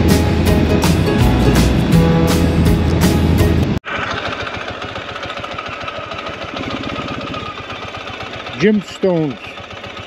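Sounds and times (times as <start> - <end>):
music: 0.0 - 3.8
motorcycle engine idling: 3.8 - 10.0.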